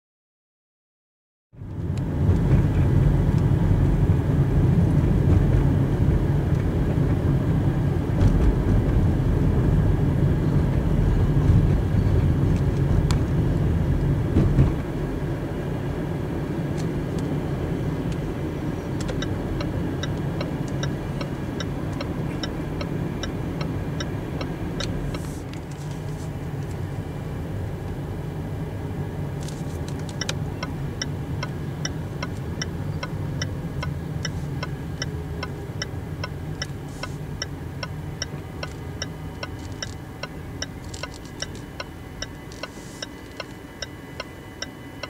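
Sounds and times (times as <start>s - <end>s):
car road and engine rumble: 1.5s - 45.0s
turn indicator ticking: 16.8s - 25.3s, 29.4s - 45.0s.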